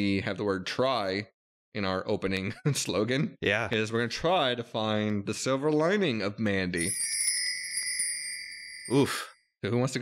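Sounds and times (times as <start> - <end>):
bright chime: 6.8 - 9.4.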